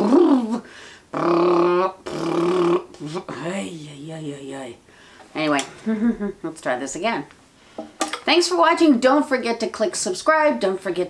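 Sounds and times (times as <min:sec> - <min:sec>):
woman making vocal sounds: 0:00.0 - 0:04.8, 0:05.6 - 0:06.7.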